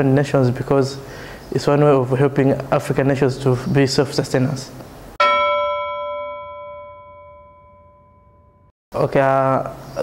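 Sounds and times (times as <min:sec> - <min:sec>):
struck bell-like chime: 0:05.2 - 0:08.7.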